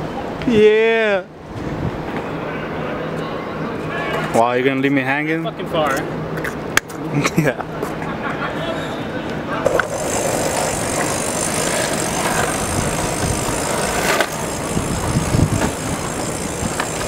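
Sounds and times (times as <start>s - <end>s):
longboard wheels rolling on paving: 9.4s - 17.0s.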